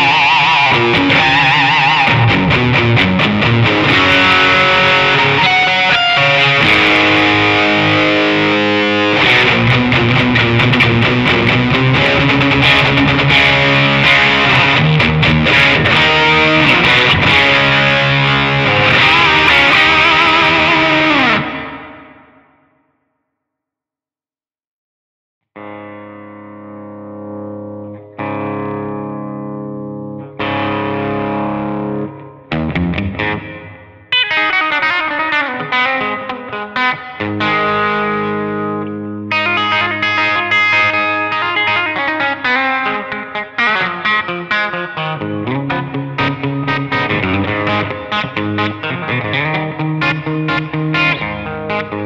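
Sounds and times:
overdriven electric guitar: 0.0 - 22.8, 25.5 - 52.0.

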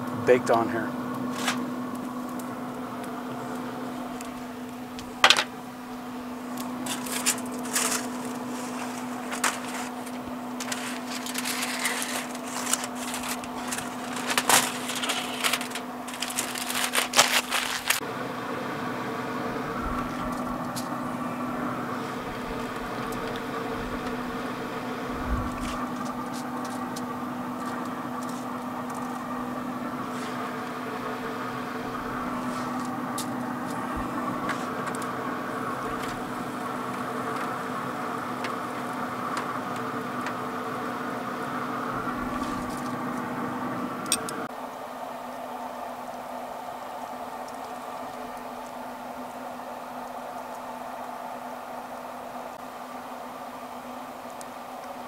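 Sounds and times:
grill fan humming: 0.0 - 55.0
aluminium foil crinkling: 1.2 - 2.5, 6.5 - 18.0.

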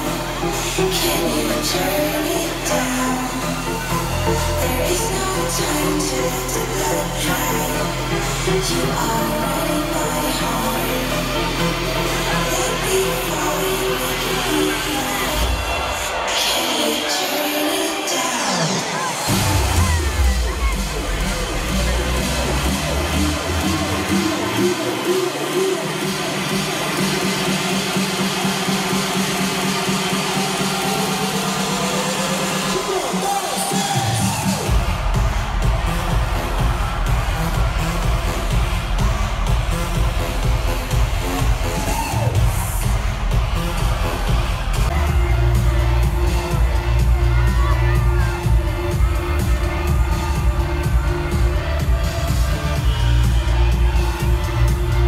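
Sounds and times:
crowd cheering: 0.0 - 55.0
loud electronic dance music: 0.0 - 55.0.

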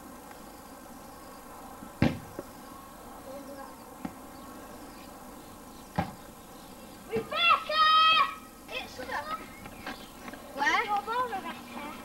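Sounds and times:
outdoor background hiss: 0.0 - 12.0
child shouting: 7.1 - 9.4.

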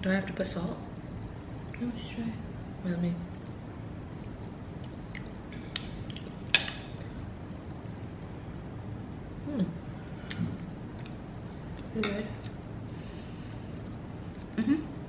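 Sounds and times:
low room hum: 0.0 - 15.0
person murmuring mm: 14.5 - 15.0.

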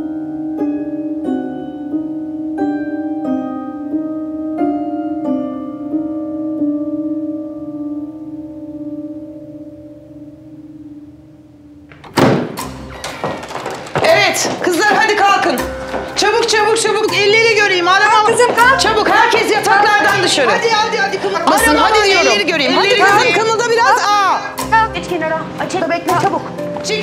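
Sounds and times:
door flung open with bang: 11.9 - 14.3.

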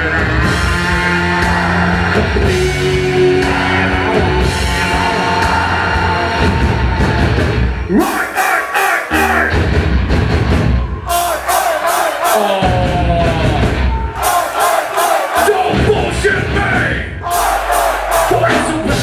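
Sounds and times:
heavy metal band playing live: 0.0 - 19.0.

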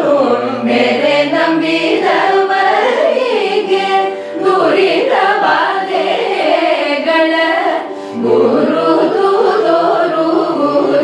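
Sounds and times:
group singing in unison: 0.0 - 11.0.

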